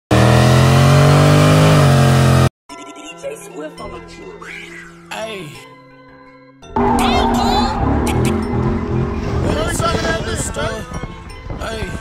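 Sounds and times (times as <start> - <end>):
car engine revving hard: 0.1 - 2.5, 6.8 - 10.2.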